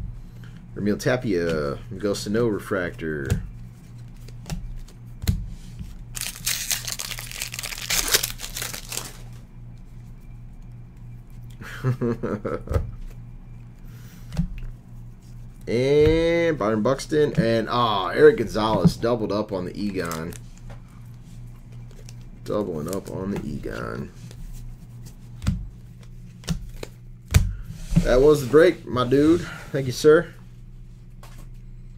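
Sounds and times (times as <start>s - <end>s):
low steady hum: 0.0s - 31.9s
wrapper crinkling and tearing: 6.1s - 9.4s, 19.8s - 20.6s
trading cards snapping: 6.2s - 9.2s.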